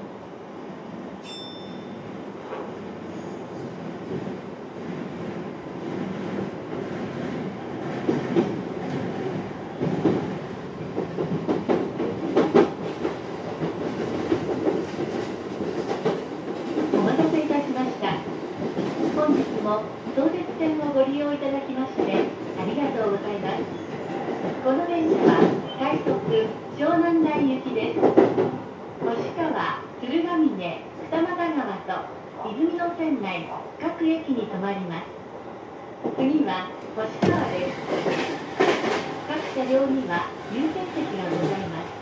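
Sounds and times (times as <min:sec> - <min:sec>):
electric train rumbling: 0:00.0 - 0:42.0.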